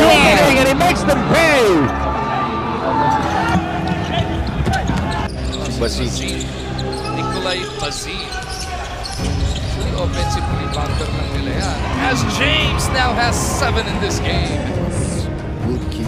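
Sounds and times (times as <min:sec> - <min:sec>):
arena crowd noise: 0:00.0 - 0:15.6
indistinct voices: 0:00.0 - 0:16.0.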